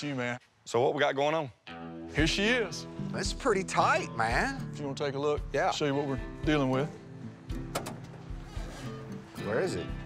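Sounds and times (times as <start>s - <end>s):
background music: 1.6s - 10.0s
car trunk latch clicks: 7.6s - 8.2s.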